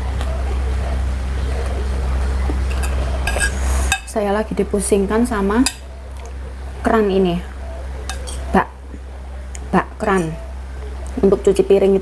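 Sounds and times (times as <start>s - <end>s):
spoon scraping ceramic bowl: 2.7s - 4.1s, 8.1s - 8.5s.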